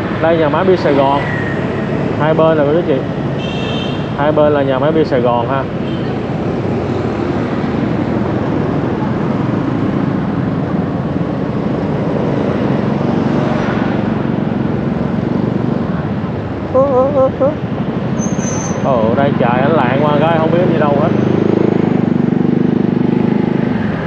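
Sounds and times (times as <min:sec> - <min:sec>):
traffic noise: 0:00.0 - 0:24.0.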